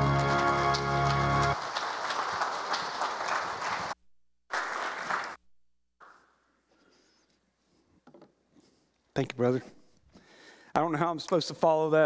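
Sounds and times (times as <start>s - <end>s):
accompaniment music chord: 0.0s - 1.6s
congregation applauding: 0.0s - 5.4s.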